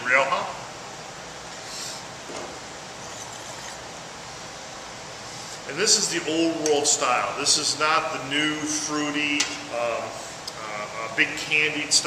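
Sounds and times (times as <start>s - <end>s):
steady room hiss: 0.0s - 12.0s
wine glass handling noise: 3.0s - 3.9s.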